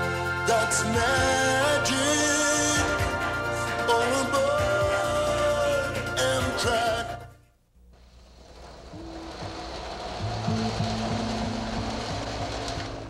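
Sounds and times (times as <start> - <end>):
train running rumble: 8.0 - 13.0
low music notes: 8.9 - 13.0.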